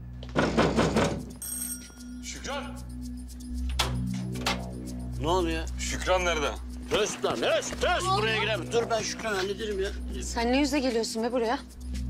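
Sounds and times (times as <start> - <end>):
electric bell ringing: 1.4 - 2.5.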